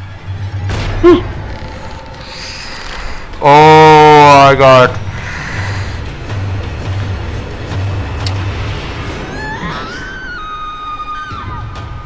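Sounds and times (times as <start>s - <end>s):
pulsing noisy rumble: 4.9s - 10.3s.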